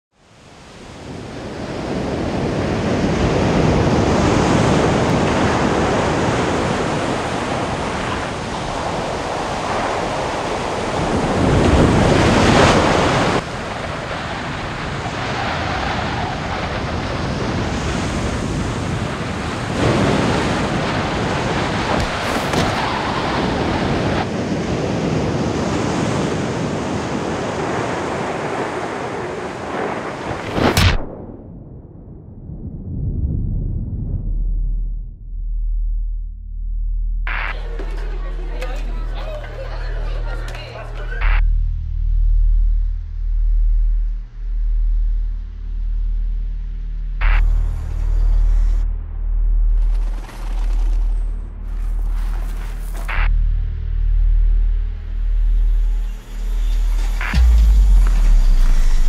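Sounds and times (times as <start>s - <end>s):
wind: 0.1s - 35.2s, 37.2s - 59.0s
surf breaking on beach: 0.3s - 31.1s.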